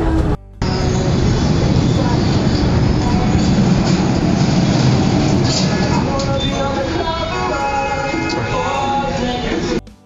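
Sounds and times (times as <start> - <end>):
motorized roof panel rumbling: 1.6 - 7.6.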